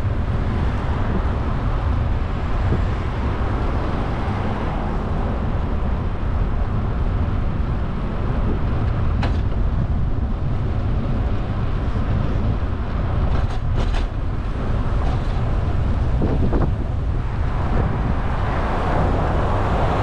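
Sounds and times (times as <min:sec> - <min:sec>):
wind and road noise from bicycle: 0:00.0 - 0:20.0.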